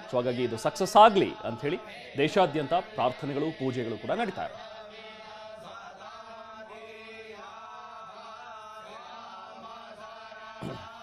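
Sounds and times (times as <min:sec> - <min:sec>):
priests chanting: 0:00.0 - 0:11.0.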